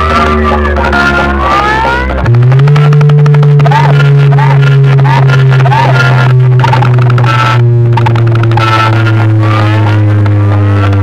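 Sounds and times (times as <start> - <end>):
low buzzing drone: 0.0 - 11.0.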